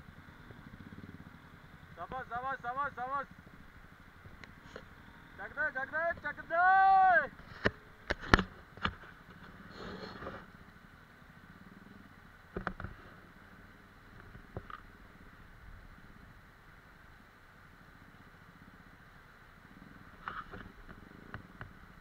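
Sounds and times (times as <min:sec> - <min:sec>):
distant motorcycle engine: 0:00.0 - 0:22.0.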